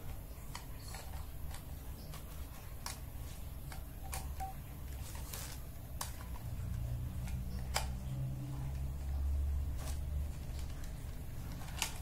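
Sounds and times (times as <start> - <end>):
low steady hum: 0.0 - 12.0
plastic pens clicking: 0.0 - 12.0.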